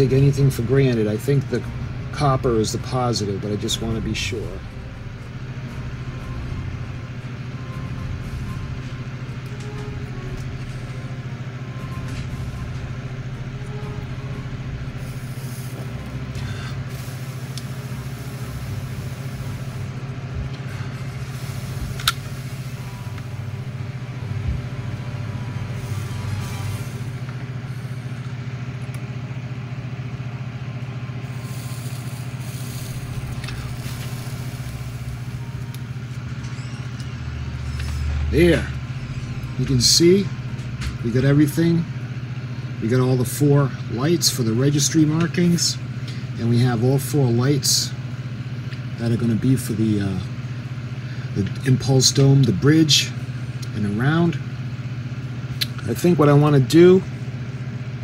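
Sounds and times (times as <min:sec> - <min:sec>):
low electrical hum: 0:00.0 - 0:58.0.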